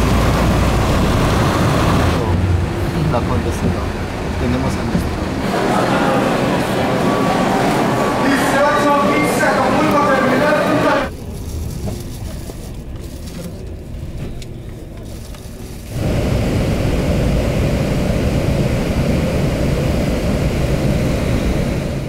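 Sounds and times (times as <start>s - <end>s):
vehicle road and engine noise: 0.0s - 7.2s, 9.6s - 22.0s
crowd chatter: 2.1s - 15.9s.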